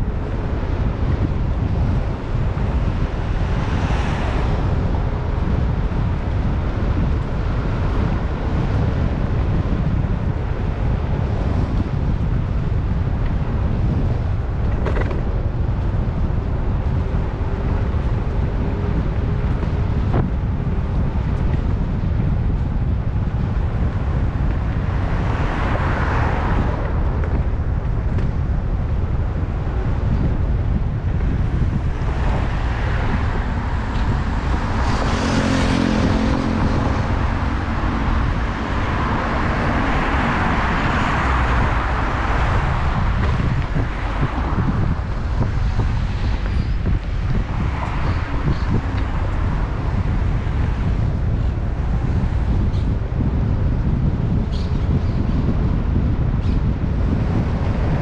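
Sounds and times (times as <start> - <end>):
cars passing: 0.0 - 58.0
engine hum: 0.0 - 58.0
tyre and road noise: 0.0 - 58.0
wind buffeting microphone: 0.0 - 58.0.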